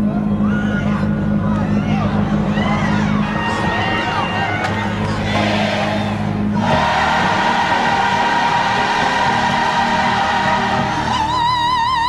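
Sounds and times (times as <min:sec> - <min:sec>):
gospel choir singing: 0:05.1 - 0:11.6.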